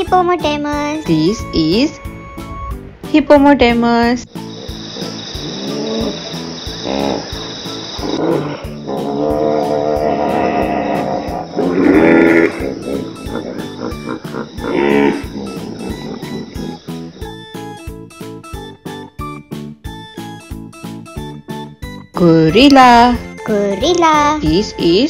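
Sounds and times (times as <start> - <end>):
background music with steady beat: 0.0 - 25.0
hippopotamus calling: 4.3 - 18.7.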